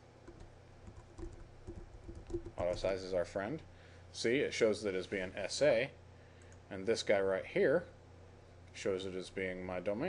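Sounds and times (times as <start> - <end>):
computer keyboard typing: 0.2 - 2.9.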